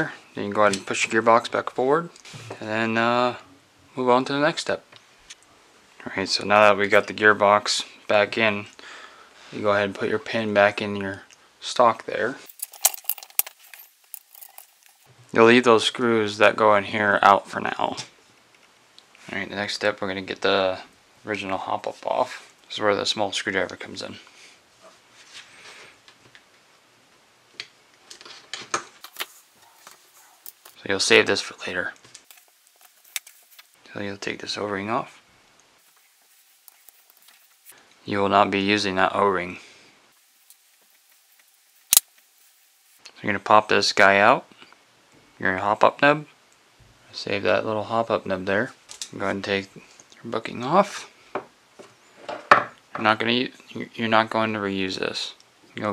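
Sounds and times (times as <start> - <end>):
metallic clicks and clinks: 12.4 - 15.1, 29.0 - 30.8, 32.2 - 33.7, 41.4 - 42.1.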